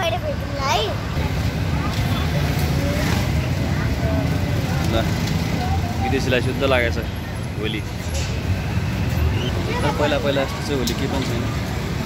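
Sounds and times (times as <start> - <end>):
traffic engines rumbling: 0.0 - 12.0.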